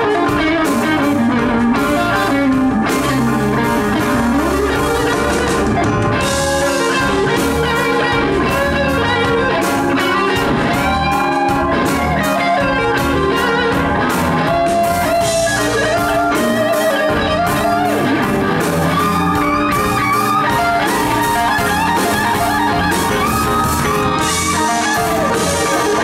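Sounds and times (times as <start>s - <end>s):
blues band playing: 0.0s - 26.0s
electric guitar lead: 0.0s - 26.0s.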